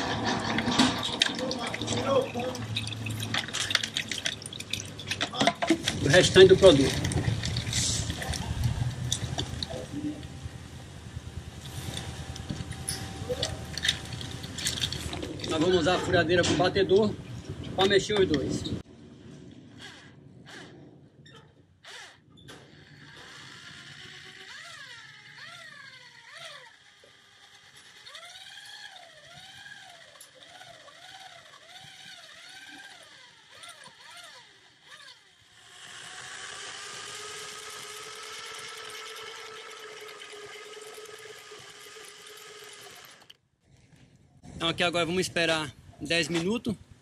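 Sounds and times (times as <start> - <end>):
electric drill mixing slurry: 0.0 - 10.4, 11.5 - 16.2, 19.7 - 21.0, 21.8 - 43.4.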